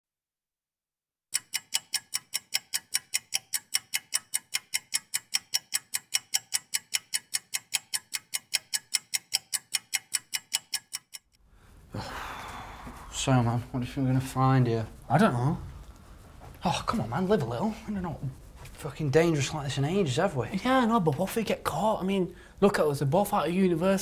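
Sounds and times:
clock ticking fast: 1.3 - 11.4.

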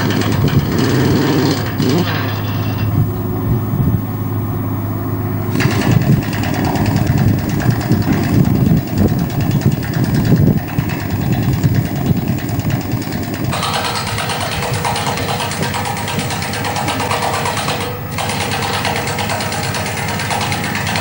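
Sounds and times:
machinery engine low rumble: 0.0 - 21.0.

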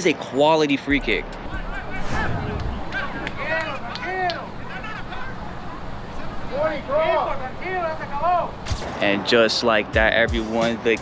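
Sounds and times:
sharp bang: 1.9 - 3.4.

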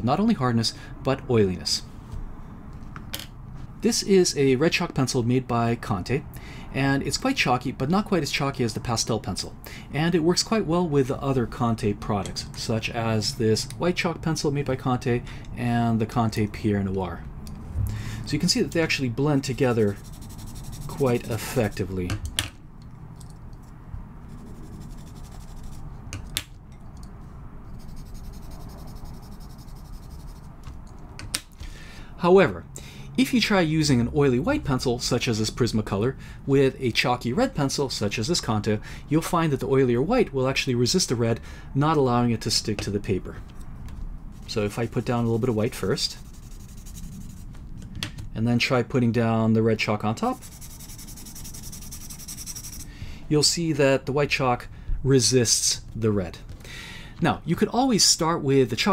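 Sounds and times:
chalk scratching on paper: 18.4 - 22.0, 24.2 - 25.9, 27.7 - 30.6, 44.3 - 47.6, 50.2 - 53.0.

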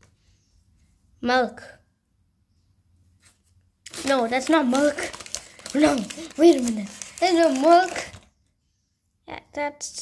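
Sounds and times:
packaging rustling: 3.9 - 8.3
person speaking: 3.9 - 8.3.

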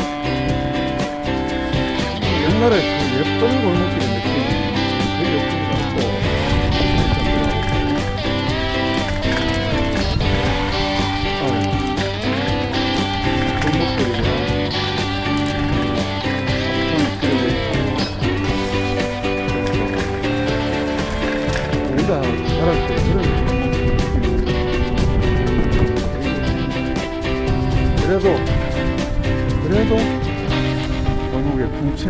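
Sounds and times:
background music with guitar: 0.0 - 32.0.

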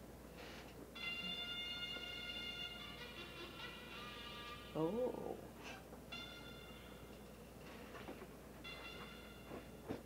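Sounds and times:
military band brass notes: 1.0 - 5.0, 6.1 - 7.1, 8.6 - 10.0.

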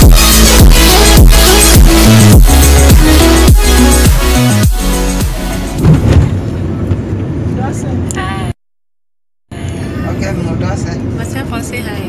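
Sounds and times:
car engine and road rumble: 5.4 - 8.6
car bumps: 5.8 - 7.2.

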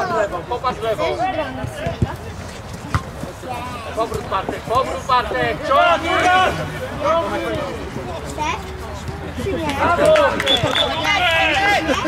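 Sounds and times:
football being kicked: 2.9 - 3.2
players calling: 9.0 - 12.0.

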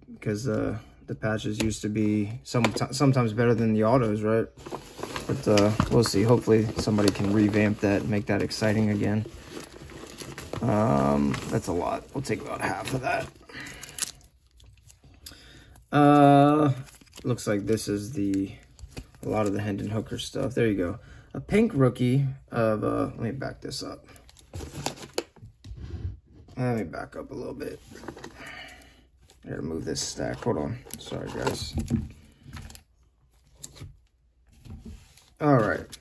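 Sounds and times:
faint rustling of cards: 0.4 - 21.0, 26.4 - 36.0.

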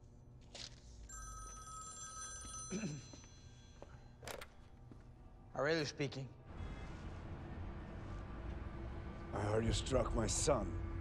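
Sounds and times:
telephone ringing: 1.1 - 3.9.

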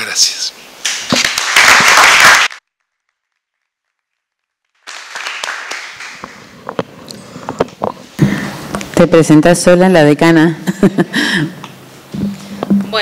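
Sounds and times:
audience applauding: 1.2 - 2.6, 4.8 - 6.5.

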